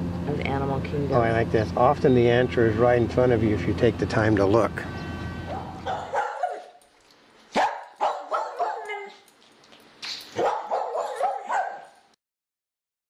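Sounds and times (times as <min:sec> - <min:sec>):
dog whining: 0:05.4 - 0:06.8, 0:08.0 - 0:09.3, 0:10.4 - 0:12.0
dog barking and yipping: 0:05.5 - 0:06.8, 0:07.5 - 0:09.3, 0:10.3 - 0:12.1.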